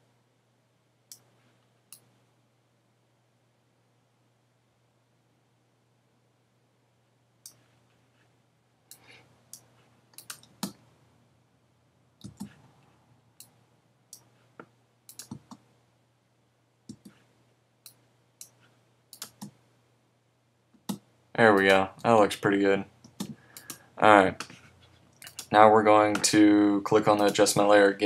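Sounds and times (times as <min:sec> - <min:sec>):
mouse and keyboard clicks: 0:09.6 - 0:10.8, 0:12.2 - 0:12.6, 0:15.1 - 0:15.6, 0:17.9 - 0:19.6, 0:25.2 - 0:25.5.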